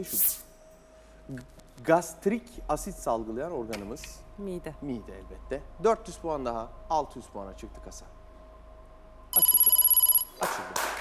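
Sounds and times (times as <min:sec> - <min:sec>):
electronic bell-like ringing trill: 0:09.3 - 0:10.4.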